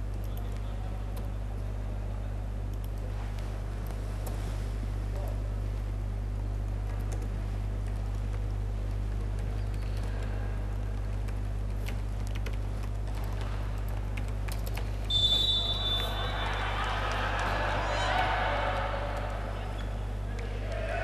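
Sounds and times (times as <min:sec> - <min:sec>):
steady low hum: 0:00.0 - 0:21.0
referee's whistle: 0:15.1 - 0:16.6
players' voices: 0:15.1 - 0:21.0.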